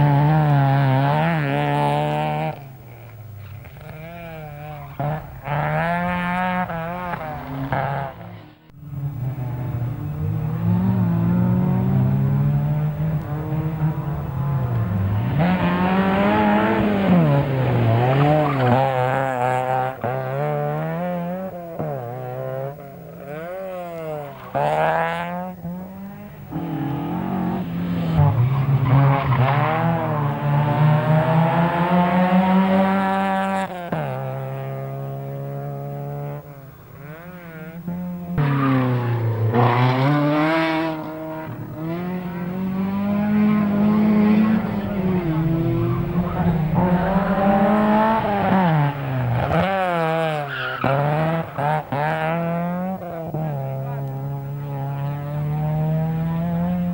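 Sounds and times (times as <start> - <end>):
rally car engine revving: 0.0 - 56.9.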